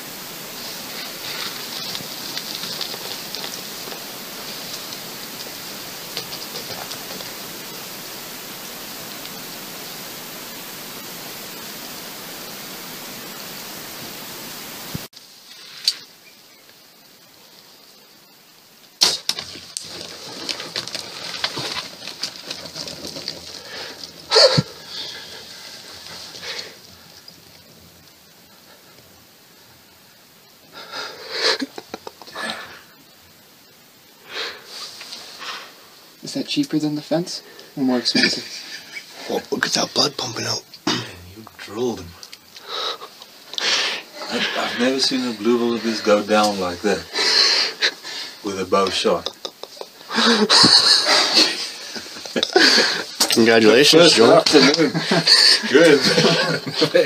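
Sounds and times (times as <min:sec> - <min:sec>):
steady hiss: 0:00.0 - 0:57.0.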